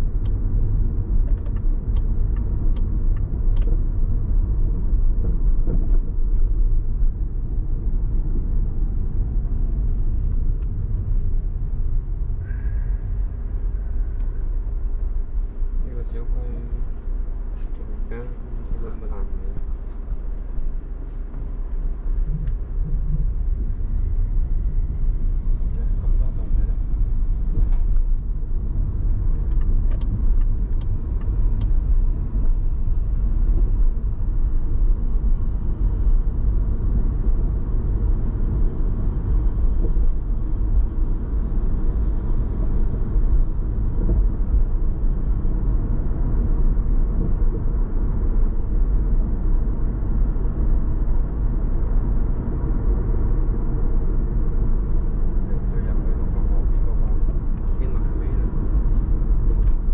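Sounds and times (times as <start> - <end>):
car driving rumble: 0.0 - 59.9.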